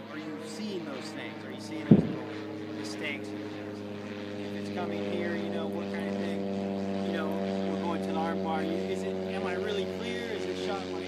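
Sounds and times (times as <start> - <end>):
engine drone: 0.0 - 11.0.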